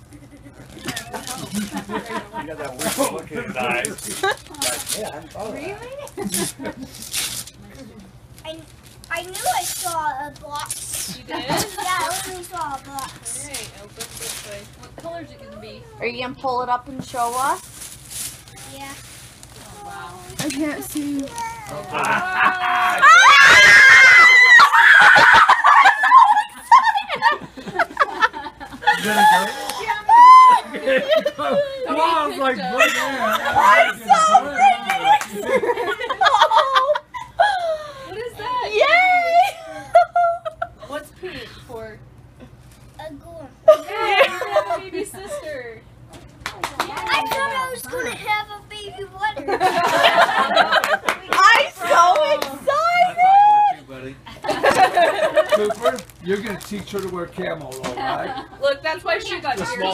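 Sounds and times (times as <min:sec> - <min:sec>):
people laughing and exclaiming: 0:21.6 - 0:40.8, 0:49.4 - 0:56.0
person screaming excitedly: 0:21.8 - 0:26.4, 0:29.9 - 0:30.7.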